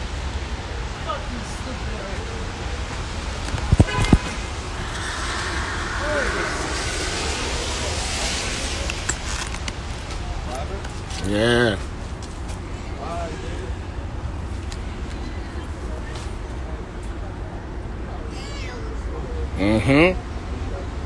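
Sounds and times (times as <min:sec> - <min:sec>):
traffic on a wet road: 0:00.0 - 0:21.0
tyre hiss: 0:03.8 - 0:11.4.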